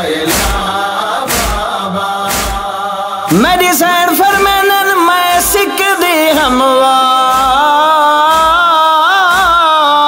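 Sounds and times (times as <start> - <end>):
male chorus chanting: 0.0 - 10.0
chest-beating thumps: 0.2 - 5.7, 7.3 - 7.6, 8.3 - 8.7, 9.3 - 9.7.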